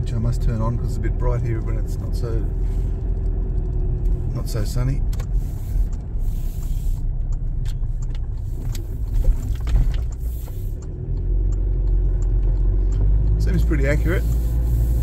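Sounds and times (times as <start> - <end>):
engine and road rumble: 0.0 - 15.0
faint clicks and rattles: 0.2 - 14.1.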